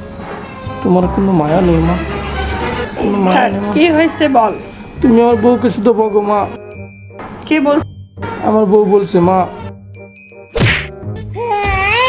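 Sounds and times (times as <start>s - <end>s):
soft background music: 0.0s - 12.0s
sharp whack: 10.5s - 11.0s.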